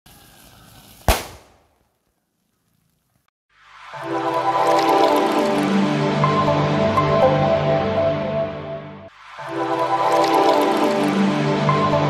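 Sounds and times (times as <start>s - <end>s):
sharp explosion: 1.0s - 1.7s.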